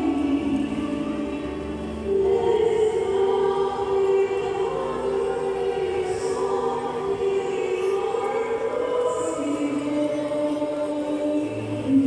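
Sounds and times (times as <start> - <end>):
group singing a hymn: 2.0 - 12.0.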